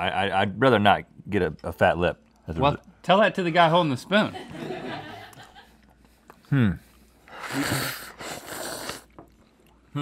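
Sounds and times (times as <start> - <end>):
man slurping ice cream: 7.2 - 9.2.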